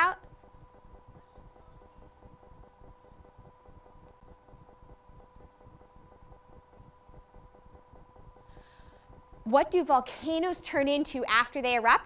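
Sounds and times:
steady even hum: 0.0s - 12.0s.

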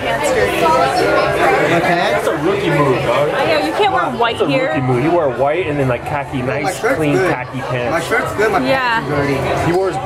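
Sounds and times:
overlapping chatter: 0.0s - 10.0s.

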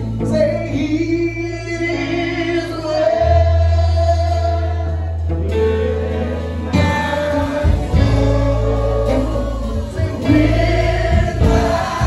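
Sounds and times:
gospel band playing: 0.0s - 12.0s
voices singing held notes: 2.1s - 12.0s.

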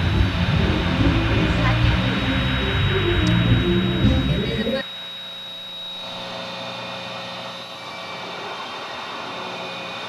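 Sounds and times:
faint hum of steady tones: 0.0s - 10.0s.

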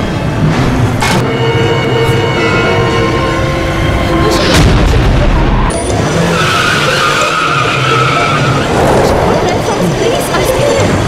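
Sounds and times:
horror score: 0.0s - 11.0s
car tyres skidding and screeching: 5.3s - 11.0s.

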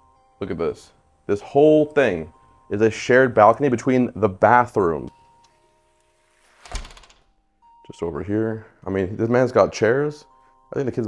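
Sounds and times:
faint held music tones: 0.0s - 11.0s.

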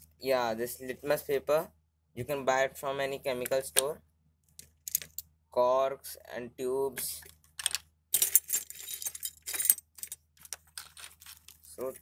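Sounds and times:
glass tubes clinking and rattling: 7.6s - 11.5s.

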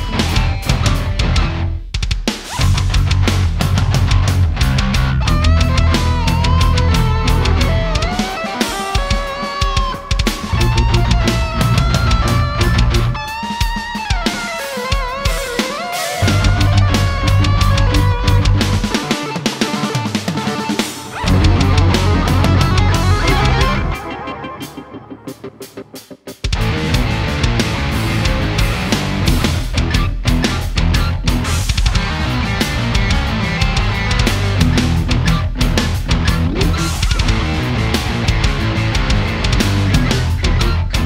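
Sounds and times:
heavy low bass: 0.0s - 1.7s, 2.6s - 8.1s, 10.5s - 13.2s, 16.2s - 18.9s, 21.2s - 24.0s, 26.5s - 41.0s
drum kit: 0.0s - 41.0s.

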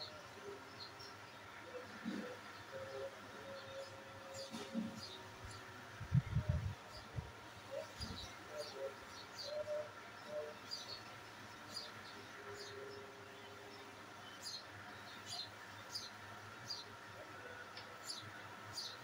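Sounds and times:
steady background hum: 0.0s - 19.0s.

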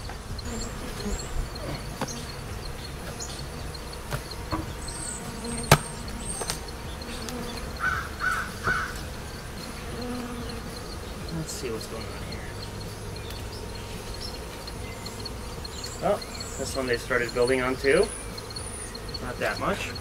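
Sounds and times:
bees buzzing: 0.0s - 20.0s
wooden hive parts knocking: 0.0s - 20.0s
sharp click: 2.0s - 7.5s.

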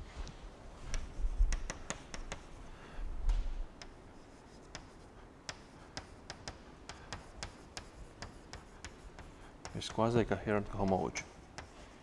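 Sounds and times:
chalk tapping on blackboard: 0.9s - 2.6s, 3.8s - 12.0s.

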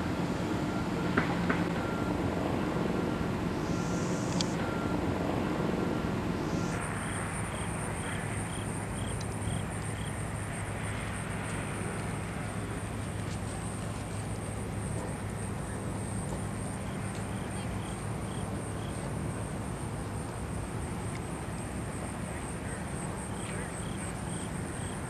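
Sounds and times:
constant wash of noise: 0.0s - 25.0s.

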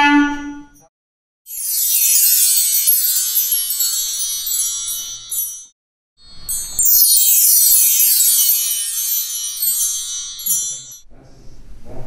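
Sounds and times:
metal chimes ringing: 1.5s - 11.0s.

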